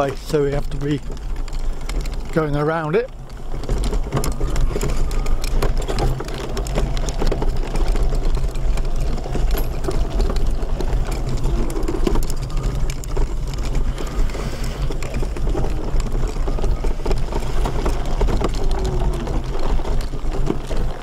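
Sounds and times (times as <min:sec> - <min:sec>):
clicks and rattles from bumps: 0:00.0 - 0:21.0.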